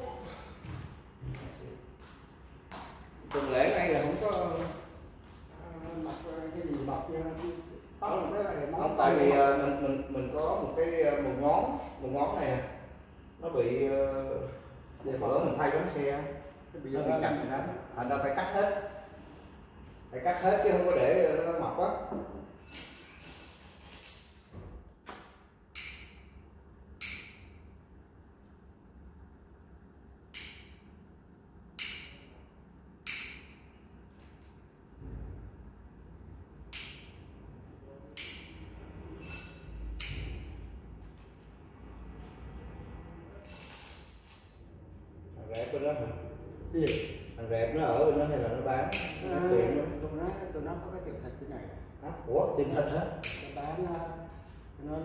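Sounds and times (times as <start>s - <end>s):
high whistle-like electronic tone: 0.0s - 1.7s, 8.8s - 25.0s, 38.2s - 46.5s.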